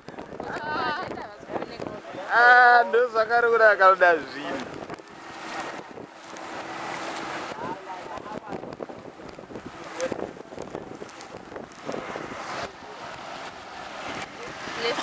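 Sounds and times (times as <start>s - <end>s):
water rushing past boat hull: 0.0s - 15.0s
wind buffeting microphone: 0.0s - 15.0s.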